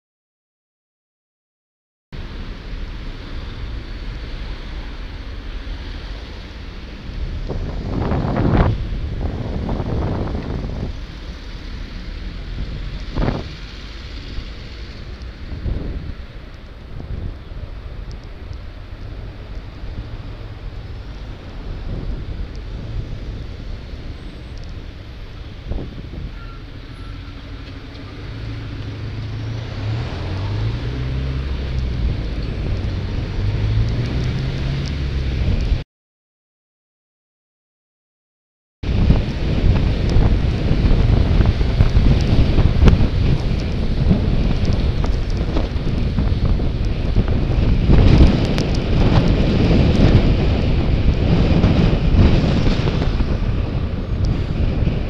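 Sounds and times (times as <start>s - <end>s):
passing vehicles: 2.2s - 35.8s, 38.8s - 55.0s
wind buffeting microphone: 3.4s - 35.8s, 38.8s - 55.0s.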